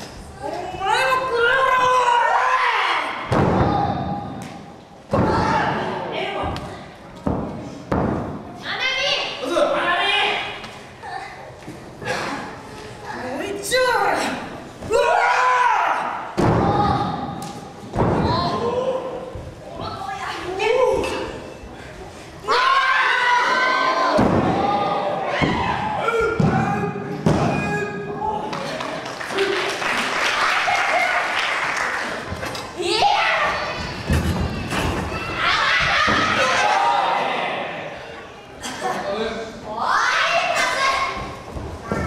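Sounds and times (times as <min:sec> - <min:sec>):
shouts and yells: 0:00.8 - 0:04.2, 0:14.8 - 0:17.2, 0:22.4 - 0:26.9, 0:32.8 - 0:34.0, 0:35.1 - 0:38.0.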